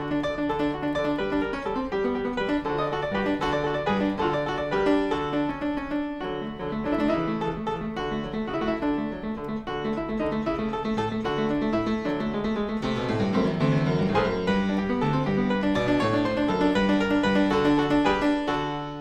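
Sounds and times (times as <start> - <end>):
fortepiano piece: 0.0 - 19.0.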